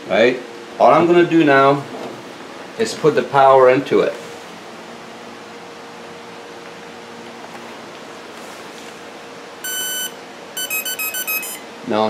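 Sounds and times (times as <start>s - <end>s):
speed controller beeps: 9.6s - 11.7s
motor hum: 9.6s - 12.0s.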